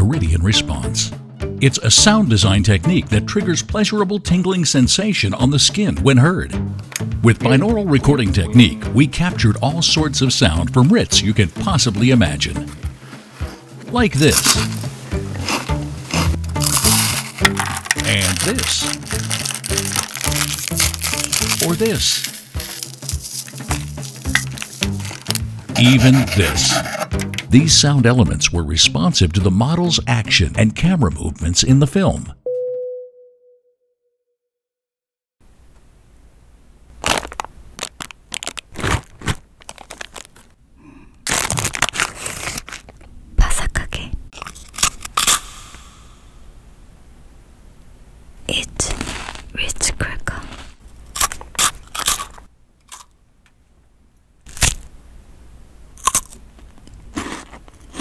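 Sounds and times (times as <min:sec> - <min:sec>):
background music with bass line: 0:05.5 - 0:30.6
cracker being chewed: 0:14.2 - 0:25.5, 0:37.0 - 0:40.5, 0:41.2 - 0:43.1, 0:48.9 - 0:49.5, 0:50.3 - 0:53.1, 0:56.0 - 0:58.0
plastic wrapper crinkling and tearing: 0:14.2 - 0:26.3, 0:37.0 - 0:40.6, 0:41.2 - 0:43.1, 0:44.4 - 0:45.4, 0:48.8 - 0:49.5, 0:54.5 - 0:54.9.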